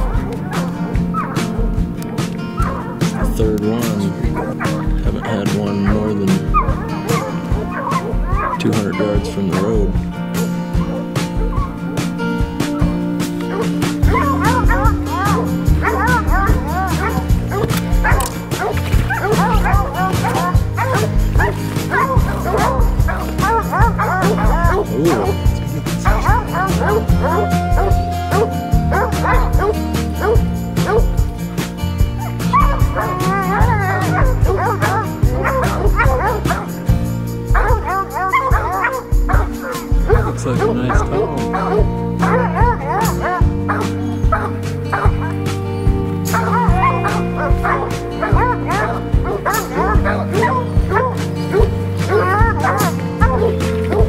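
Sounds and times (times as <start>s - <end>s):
background music with bass line: 0.0s - 54.0s
hounds barking and baying: 0.0s - 54.0s.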